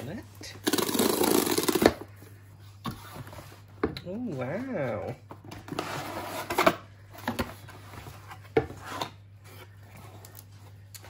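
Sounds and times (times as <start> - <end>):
cardboard rustling and scraping: 0.7 - 3.8, 5.0 - 10.8.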